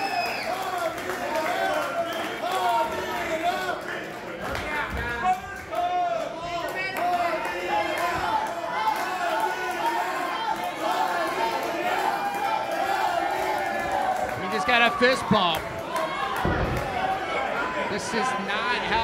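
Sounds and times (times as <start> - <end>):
crowd voices talking and calling out: 0.0 - 19.0.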